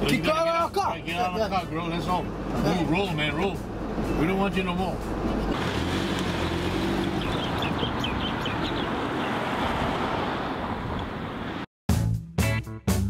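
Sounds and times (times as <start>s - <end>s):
car pulling away: 1.9s - 11.6s.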